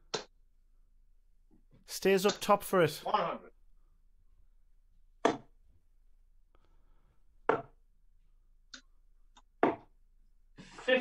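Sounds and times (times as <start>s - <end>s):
darts striking dartboard: 5.2s - 5.5s.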